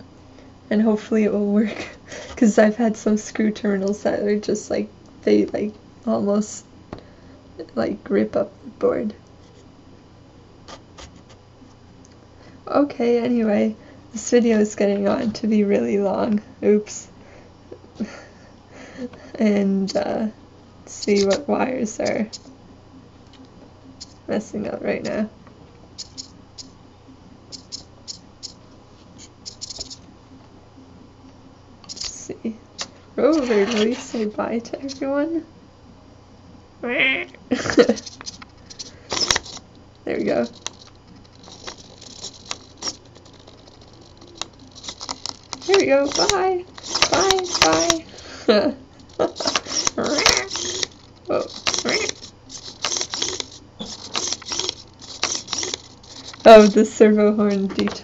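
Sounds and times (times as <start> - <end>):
servo whirring: 20.9 - 22.5, 26.0 - 26.8, 27.5 - 28.6, 29.2 - 30.1, 32.8 - 35.1, 37.7 - 58.0
jumper wire connectors clicking: 37.8 - 39.8, 40.4 - 48.3, 49.0 - 56.8.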